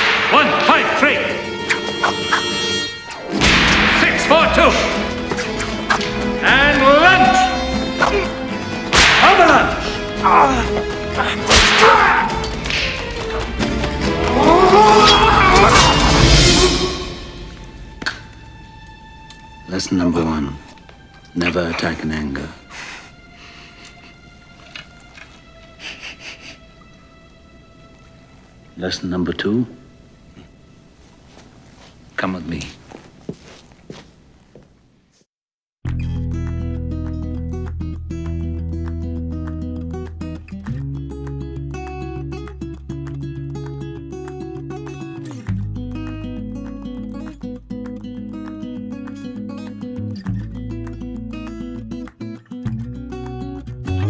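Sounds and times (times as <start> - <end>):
orchestral film score: 0.0 - 31.6
footsteps: 20.6 - 21.9, 30.3 - 35.3.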